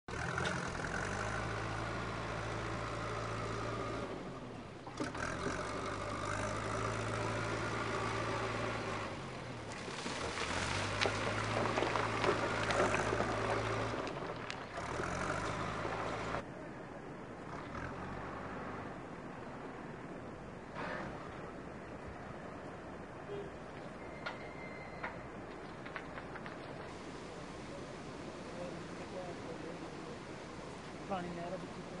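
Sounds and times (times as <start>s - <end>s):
diesel engine running under load: 0.1s - 16.4s.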